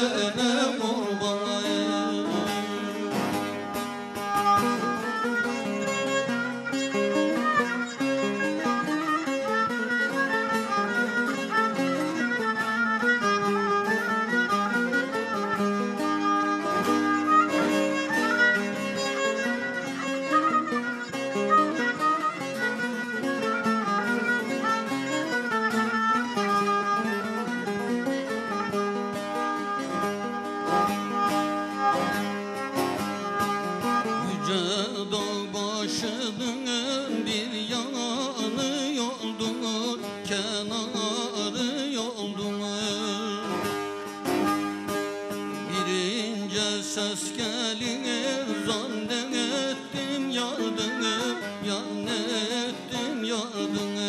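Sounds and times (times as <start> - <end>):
bowed spike fiddle: 0.0 - 54.0
plucked lute run: 0.0 - 54.0.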